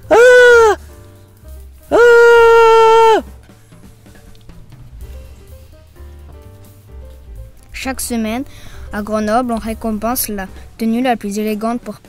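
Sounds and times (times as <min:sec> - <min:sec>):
person yelling aaah: 0:00.0 - 0:00.8, 0:01.9 - 0:03.2
faint music: 0:00.0 - 0:12.0.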